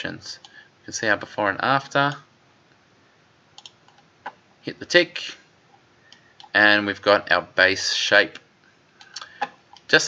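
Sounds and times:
computer mouse clicks: 0:03.6 - 0:04.4, 0:06.1 - 0:06.6.

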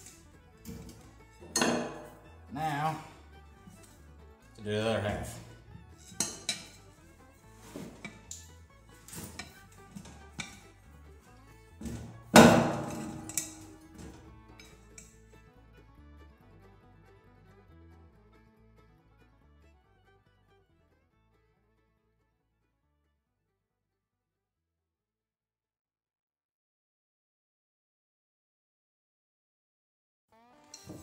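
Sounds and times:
tools clinking against steel rim: 0:00.0 - 0:02.3, 0:06.0 - 0:07.0, 0:07.8 - 0:10.7, 0:11.8 - 0:15.2
loud metal thud and ring: 0:00.8 - 0:02.2, 0:11.9 - 0:14.2.

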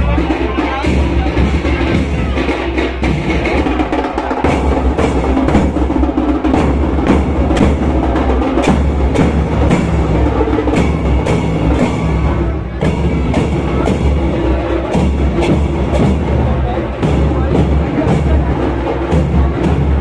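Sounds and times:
bass drums beating: 0:00.0 - 0:20.0.

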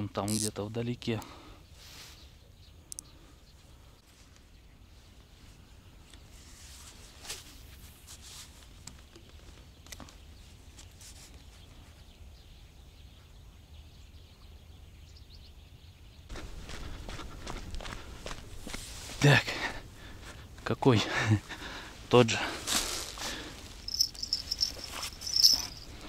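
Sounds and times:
footsteps rustling through dry grass: 0:16.3 - 0:19.4, 0:21.8 - 0:26.0.

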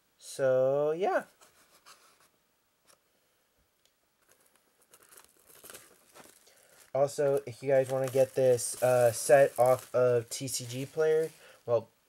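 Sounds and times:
faint rustling and crinkling: 0:01.2 - 0:03.0, 0:04.2 - 0:11.8.

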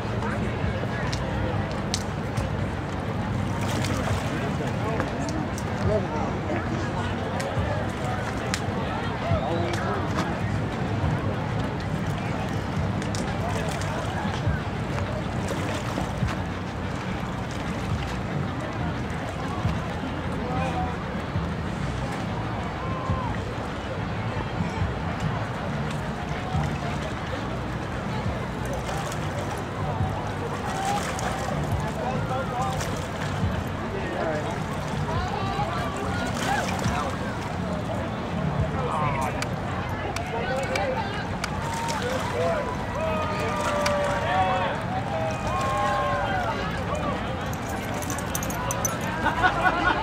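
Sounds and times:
distant voices talking: 0:00.0 - 0:50.0
outdoor background noise: 0:00.0 - 0:50.0.

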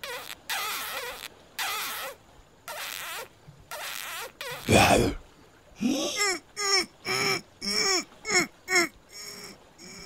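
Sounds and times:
cartoon smooching noises: 0:00.0 - 0:04.8.

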